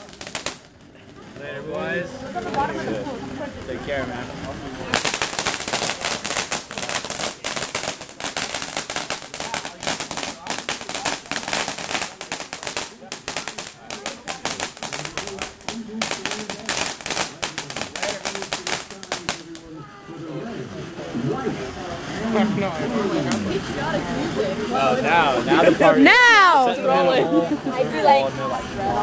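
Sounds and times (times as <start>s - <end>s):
firework fountain crackling: 0.0s - 29.0s.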